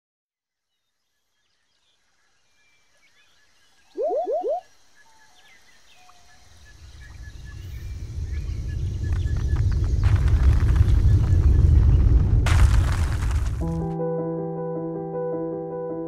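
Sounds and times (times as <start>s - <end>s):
faint bird chirps: 1.6s - 7.8s
animal call of rising notes: 4.0s - 4.6s
low earthquake rumble: 7.4s - 13.8s.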